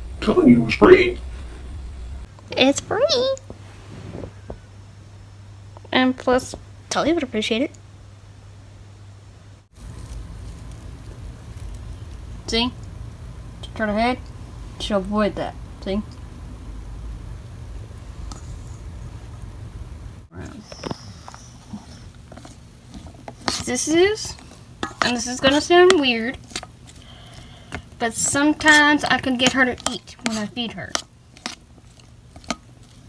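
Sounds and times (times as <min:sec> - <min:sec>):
steady low rumble: 0:00.0 - 0:06.9, 0:08.8 - 0:33.0
steady low hum: 0:00.0 - 0:33.0
dog eating from steel bowl: 0:20.3 - 0:33.0
metal spoon scraping steel bowl: 0:20.5 - 0:33.0.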